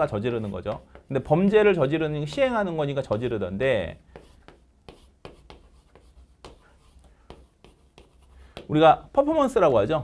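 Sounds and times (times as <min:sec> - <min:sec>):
chalk tapping and scratching on board: 0:00.0 - 0:09.8.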